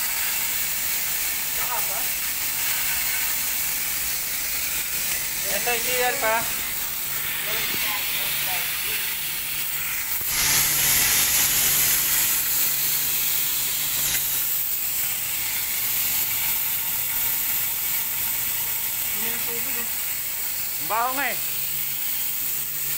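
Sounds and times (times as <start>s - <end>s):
sprinkler spraying water hiss: 0.0s - 22.9s.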